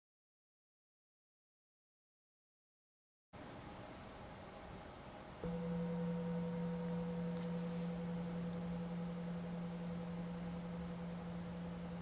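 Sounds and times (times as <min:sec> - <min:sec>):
singing bowl ringing: 0:05.4 - 0:12.0.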